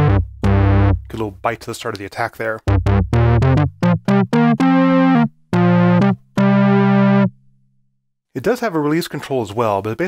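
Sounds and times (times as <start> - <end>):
analog synthesizer notes: 0.0 - 1.4, 2.7 - 7.3.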